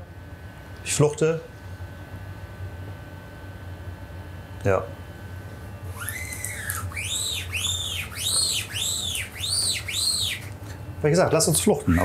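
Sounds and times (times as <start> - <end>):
high whistled tones: 5.9 - 10.6.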